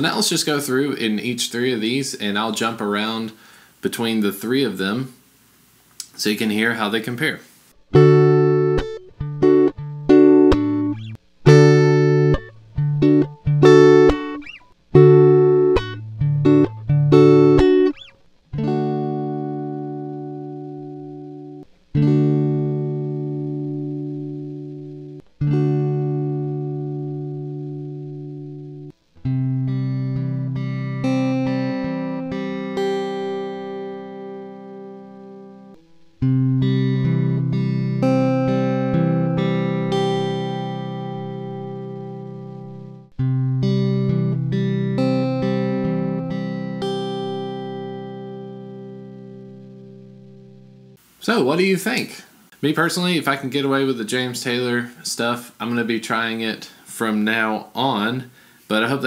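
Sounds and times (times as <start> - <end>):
electric guitar chords: 7.8 - 51.0
picked guitar notes: 7.9 - 51.0.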